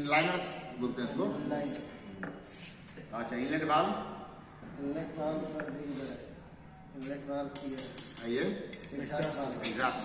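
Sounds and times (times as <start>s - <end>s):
metal rod tapping on metal: 7.5s - 9.5s.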